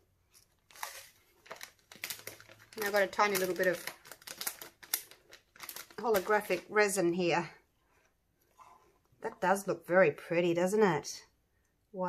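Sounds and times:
plastic bag crinkling: 0.3 - 6.8.

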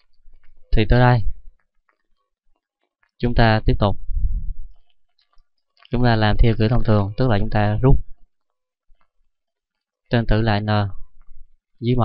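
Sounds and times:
low muffled rumble: 4.0 - 4.8.

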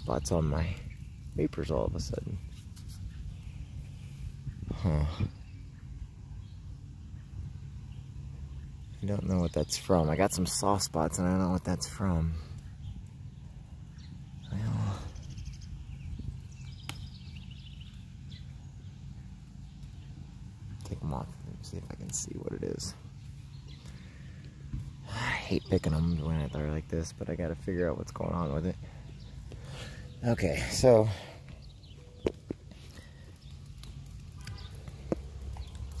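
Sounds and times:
wind rumble on microphone: 0.9 - 8.9, 15.1 - 18.1.

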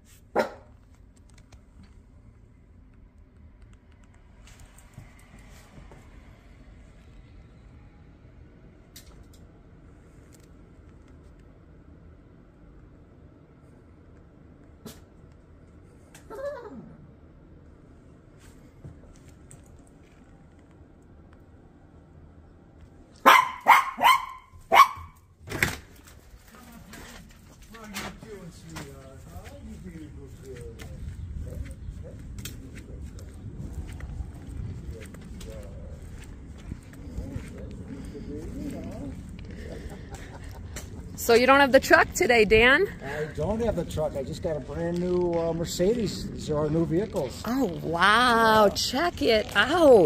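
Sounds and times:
small dog barking: 0.3 - 0.8, 23.2 - 25.2.

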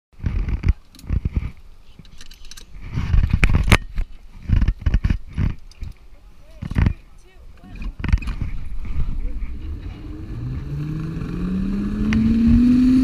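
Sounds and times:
muffled rumbling bursts: 7.7 - 13.0.

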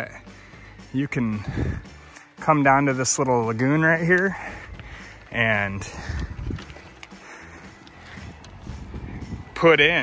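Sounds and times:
footsteps on gravel: 1.0 - 9.6.

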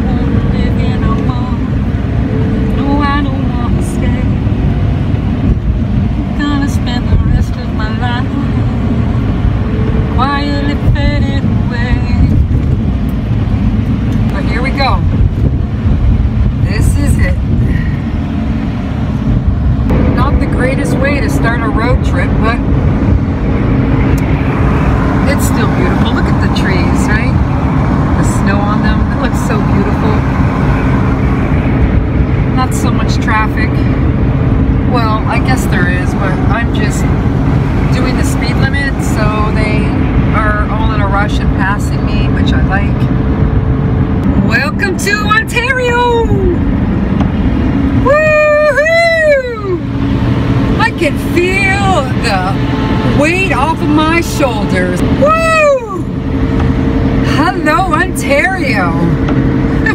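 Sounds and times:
van road and engine rumble: 0.0 - 59.9.

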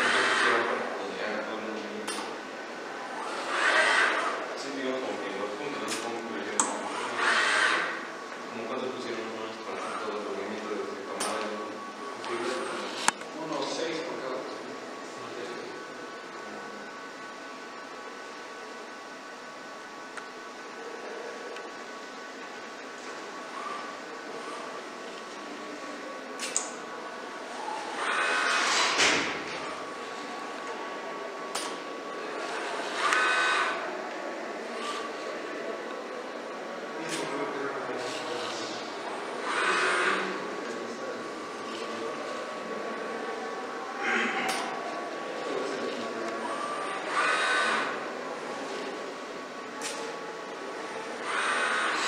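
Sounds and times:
robot workcell mechanical running: 0.0 - 0.9, 3.0 - 10.4, 26.4 - 30.8, 31.5 - 33.9, 37.9 - 40.8, 45.9 - 49.0, 50.8 - 52.0
machine hum with whine: 0.0 - 52.0.

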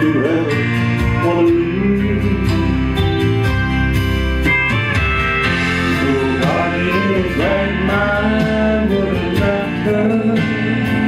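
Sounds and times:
country music with guitar: 0.0 - 11.0.

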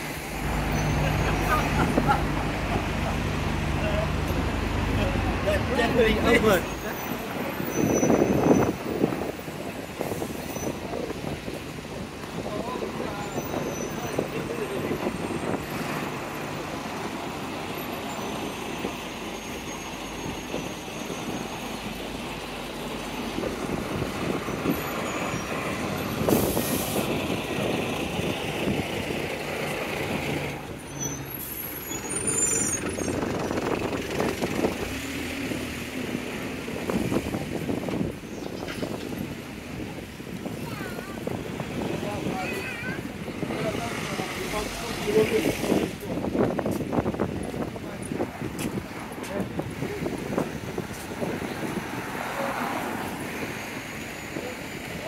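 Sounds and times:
traffic passing: 0.0 - 55.0
passers-by talking: 0.4 - 19.0, 33.2 - 55.0
air brakes hissing: 26.2 - 27.1.

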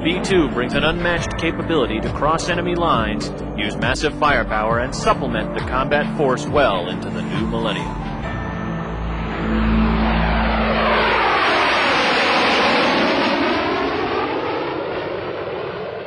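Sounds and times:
jet engines flyover: 0.0 - 16.0.

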